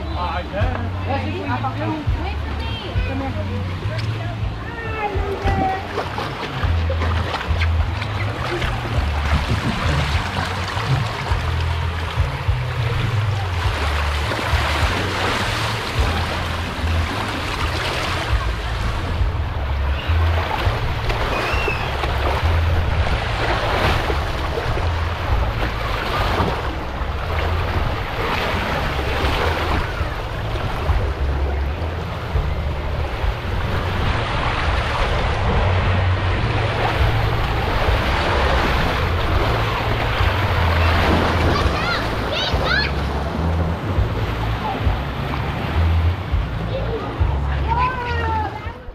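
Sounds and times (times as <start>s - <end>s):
wind buffeting microphone: 0.6s - 48.9s
water rushing down a slide: 19.9s - 26.7s.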